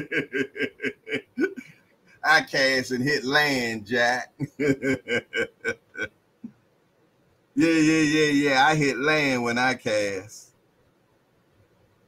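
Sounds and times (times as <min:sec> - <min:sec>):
man laughing: 0:00.0 - 0:06.1, 0:07.6 - 0:09.1.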